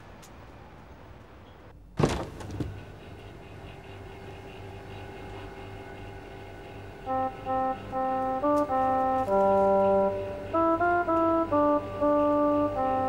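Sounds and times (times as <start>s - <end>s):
refrigerator hum: 1.8s - 13.0s
refrigerator door pop: 2.0s - 2.7s
music with short stepped notes: 6.7s - 13.0s.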